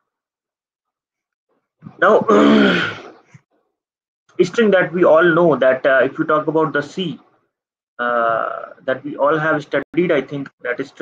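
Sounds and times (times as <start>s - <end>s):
man speaking: 8.0s - 11.0s.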